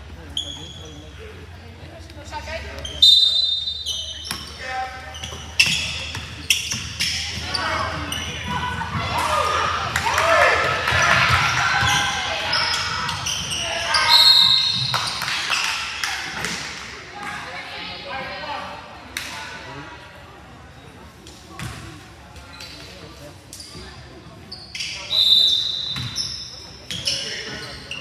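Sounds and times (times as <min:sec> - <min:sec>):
players and spectators calling: 0:02.6 - 0:17.6
referee's whistle: 0:02.9 - 0:04.5, 0:13.9 - 0:14.9, 0:24.8 - 0:26.4.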